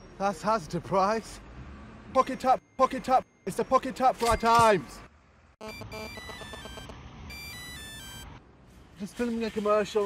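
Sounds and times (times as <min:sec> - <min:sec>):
mobile phone ringtone beeping: 0:05.6 - 0:08.4.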